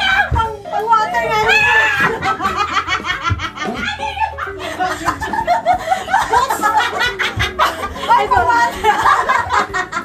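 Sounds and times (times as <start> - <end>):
women laughing: 1.2 - 10.0.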